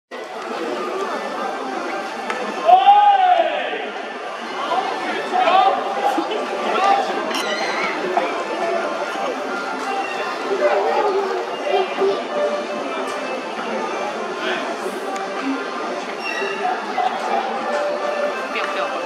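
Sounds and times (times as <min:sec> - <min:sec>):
people chattering and calling out: 0:00.1 - 0:19.0.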